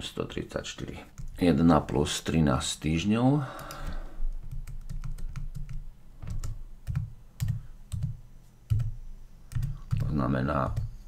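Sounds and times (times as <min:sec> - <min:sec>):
computer keyboard typing: 0:01.1 - 0:01.4, 0:03.6 - 0:11.0.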